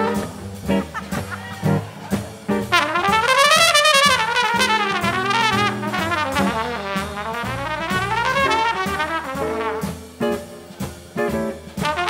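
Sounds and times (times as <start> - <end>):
drums: 0.0 - 12.0
upright bass: 0.0 - 12.0
trumpet with wide vibrato: 2.7 - 10.0.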